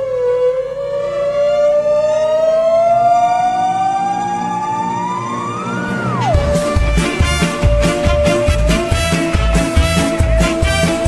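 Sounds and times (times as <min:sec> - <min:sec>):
synthesizer note gliding upward: 0:00.0 - 0:11.0
soft musical accompaniment: 0:04.2 - 0:11.0.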